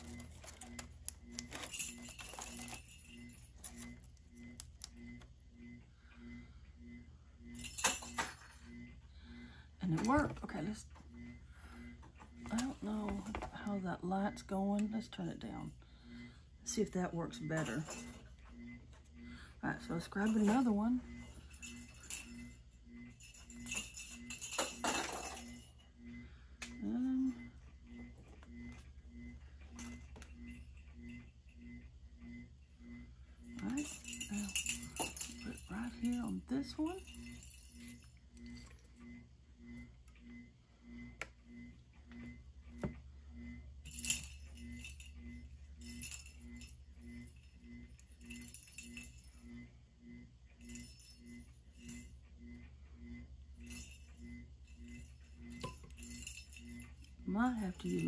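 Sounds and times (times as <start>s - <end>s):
rattling and clinking: 0.0s - 3.9s, 33.7s - 36.3s
small motor humming: 0.0s - 10.3s, 17.5s - 58.0s.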